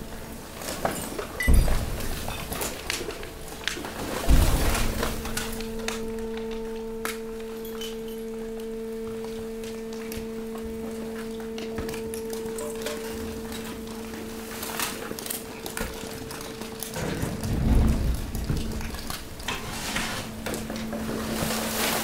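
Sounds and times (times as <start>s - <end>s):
hydraulic pump humming: 0.0s - 22.0s
waste crackling and popping: 2.2s - 22.0s
heavy thump: 4.2s - 5.6s.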